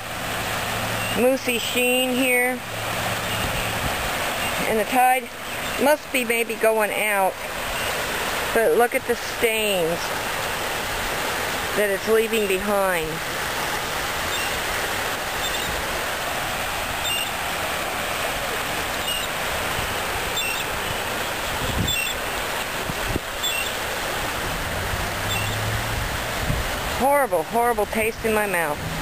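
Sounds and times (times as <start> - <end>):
small waves lapping on shore: 0.0 - 29.0.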